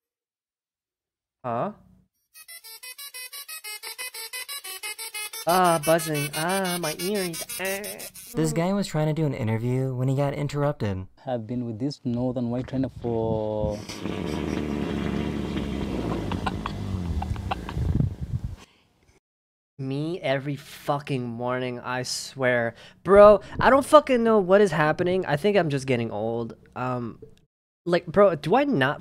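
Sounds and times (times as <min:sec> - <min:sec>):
tesla coil buzzing a tune: 0:02.4 - 0:08.7, 0:13.8 - 0:17.5
rhinoceros farting: 0:13.7 - 0:18.0.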